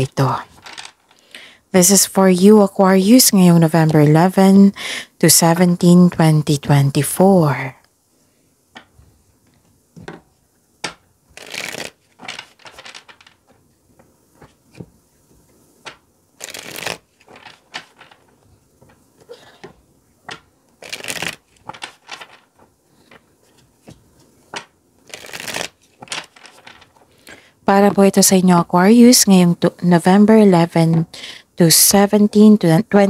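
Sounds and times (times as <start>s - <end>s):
cards knocking on wooden table: 10.0s - 11.1s, 11.8s - 15.0s
cards riffling together: 10.8s - 14.9s, 15.8s - 19.0s, 19.6s - 27.4s.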